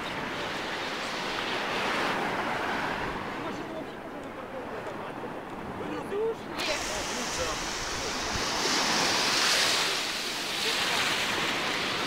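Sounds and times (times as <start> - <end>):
small waves breaking on shore: 0.0 - 12.0.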